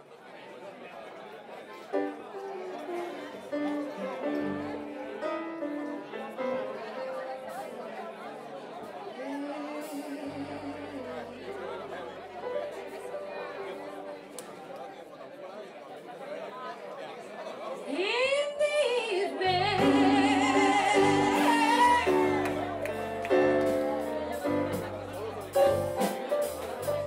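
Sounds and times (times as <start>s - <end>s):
audience chatter: 0.0s - 27.0s
blues band playing: 2.0s - 8.1s, 9.3s - 14.5s, 19.4s - 27.0s
woman singing: 9.2s - 11.5s, 17.9s - 22.7s.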